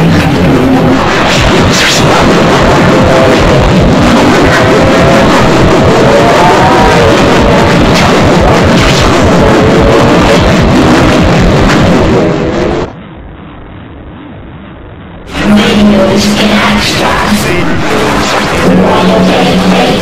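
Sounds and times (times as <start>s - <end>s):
distorted remix music jumble: 0.0s - 20.0s
warbling pitch-bent tones: 15.3s - 20.0s.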